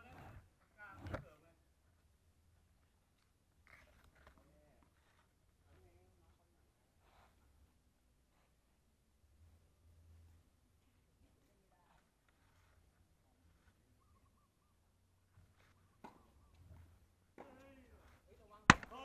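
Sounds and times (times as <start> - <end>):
sharp loud knock: 18.7 - 19.0.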